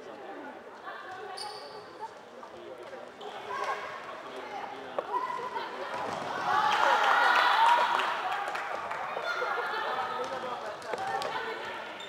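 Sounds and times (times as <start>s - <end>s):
shoe squeak: 1.3s - 2.2s.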